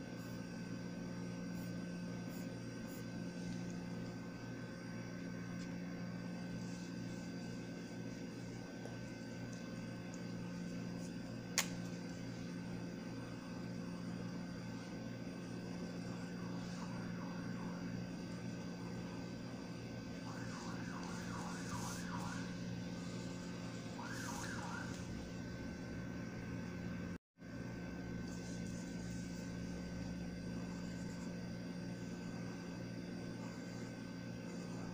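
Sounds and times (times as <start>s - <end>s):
low hum with hiss: 0.0s - 34.9s.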